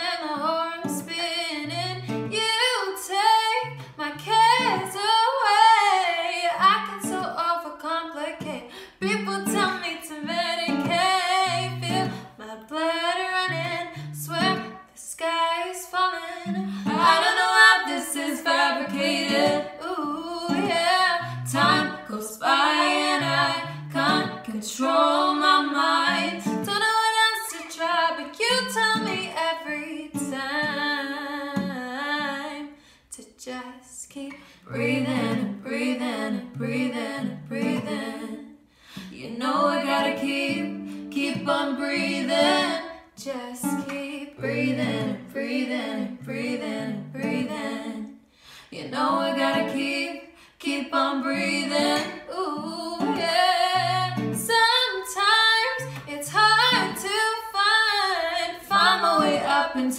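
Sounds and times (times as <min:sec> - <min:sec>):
women singing pop song: 0:00.0 - 0:59.9
strummed acoustic guitar: 0:00.3 - 0:07.5, 0:08.4 - 0:12.4, 0:13.4 - 0:14.8, 0:16.2 - 0:29.5, 0:34.3 - 0:38.3, 0:38.9 - 0:48.0, 0:51.3 - 0:54.8, 0:55.8 - 0:57.2, 0:58.7 - 0:59.9.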